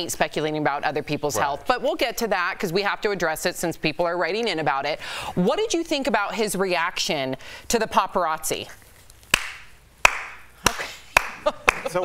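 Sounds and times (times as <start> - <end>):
hand claps: 9.3 - 12.0.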